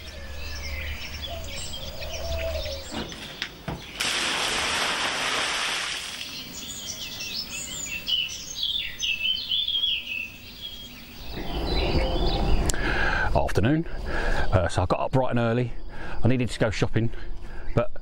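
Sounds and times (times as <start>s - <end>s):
wild birds chirping: 0.0s - 4.4s, 5.9s - 17.8s
loud rushing noise: 11.3s - 13.5s.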